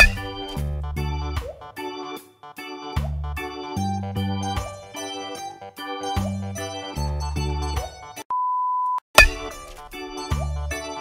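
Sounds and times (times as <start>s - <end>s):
keyboard music: 0.0s - 8.2s, 9.2s - 11.0s.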